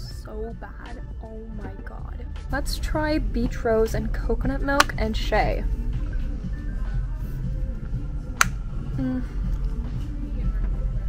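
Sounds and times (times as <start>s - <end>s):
store background music: 0.0s - 11.0s.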